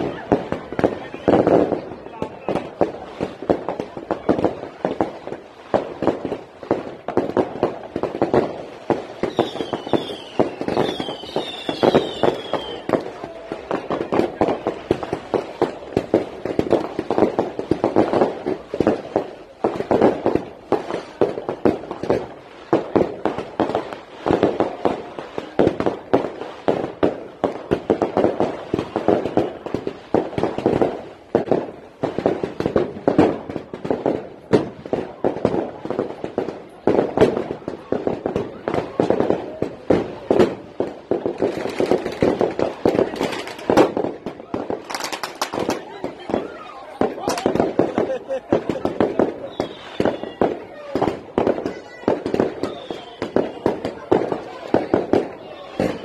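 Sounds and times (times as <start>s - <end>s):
people's voices: 0.0s - 56.0s
sharp pops and crackles: 0.0s - 56.0s.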